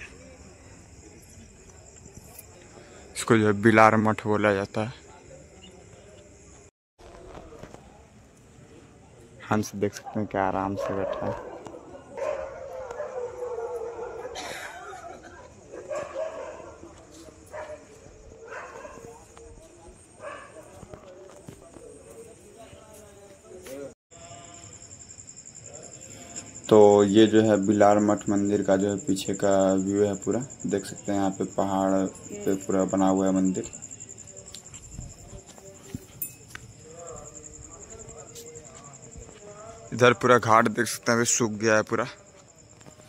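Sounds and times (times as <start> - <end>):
dog barking: 10.0 - 14.5, 15.7 - 16.9, 17.5 - 19.2, 20.2 - 20.8
faint background voices: 10.8 - 24.8, 27.9 - 43.0
pulsing insect trill: 24.1 - 43.0.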